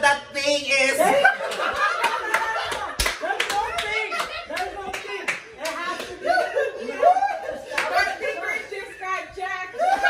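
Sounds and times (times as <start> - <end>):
excited voices: 0.6 - 10.0
laughter: 1.0 - 3.1, 3.8 - 4.7, 5.9 - 8.7, 9.8 - 10.0
hand claps: 1.5 - 6.2.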